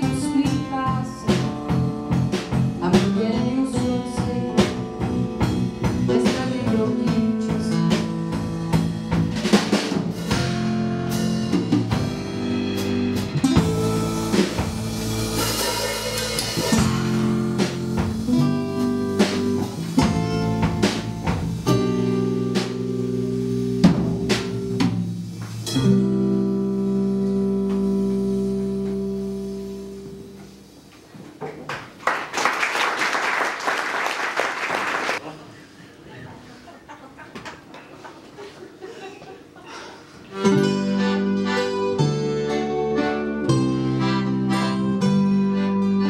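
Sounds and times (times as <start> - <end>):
acoustic band playing: 0.0 - 31.1, 38.6 - 46.0.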